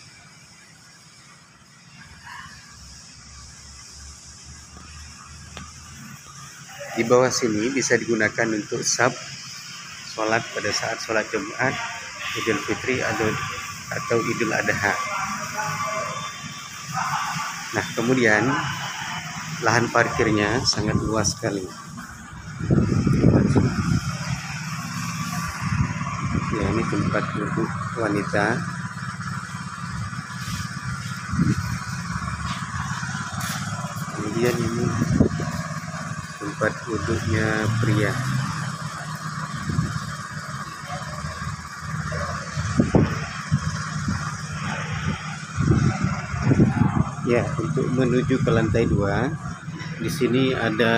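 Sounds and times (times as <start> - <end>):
road traffic hum: 0.0 - 50.9
motor vehicle passing: 18.5 - 50.9.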